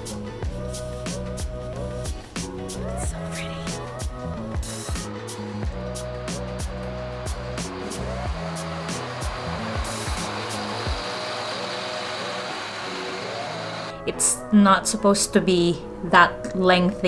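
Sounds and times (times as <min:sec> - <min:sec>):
music with beat and bass: 0:00.0 - 0:13.9
bus engine and tyres rushing: 0:07.2 - 0:14.0.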